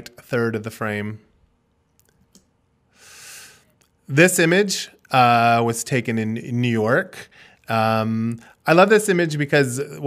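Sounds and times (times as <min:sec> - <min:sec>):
man talking: 0:00.0 - 0:01.3, 0:04.1 - 0:10.0.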